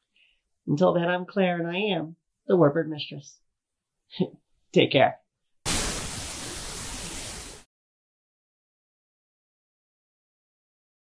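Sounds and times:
static-like hiss: 0:05.7 - 0:07.7.

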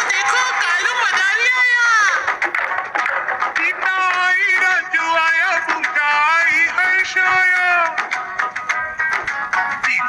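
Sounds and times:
rhythmic backing music: 0:00.0 - 0:10.0.

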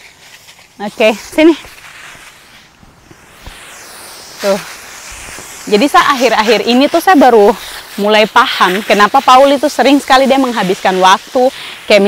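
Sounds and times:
hose spraying water: 0:00.0 - 0:12.0.

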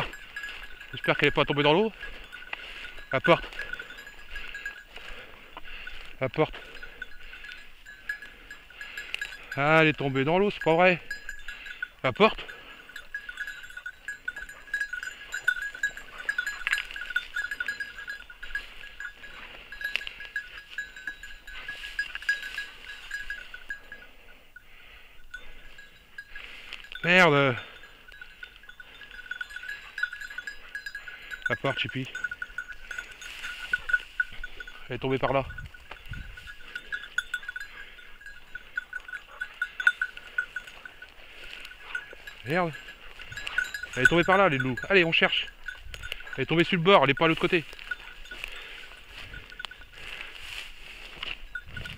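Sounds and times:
small bell jingling: 0:00.0 - 0:51.9.

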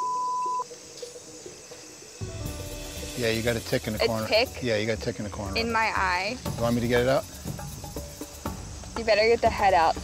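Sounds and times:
censor bleep tone: 0:00.0 - 0:00.7
background ambience: 0:00.0 - 0:10.0.

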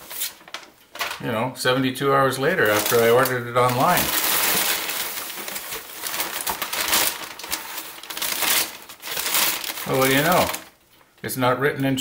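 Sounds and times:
newspaper rustling and crinkling: 0:00.0 - 0:01.2, 0:02.5 - 0:11.1.

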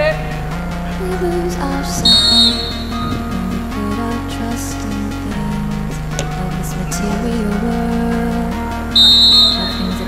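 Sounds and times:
electronic dance music: 0:00.0 - 0:10.0
referee's whistle blast: 0:02.0 - 0:02.8, 0:09.0 - 0:09.9.

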